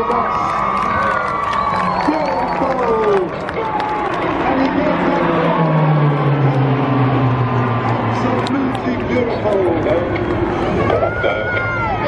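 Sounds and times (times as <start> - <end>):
propeller planes flying past: 0.0 - 12.0.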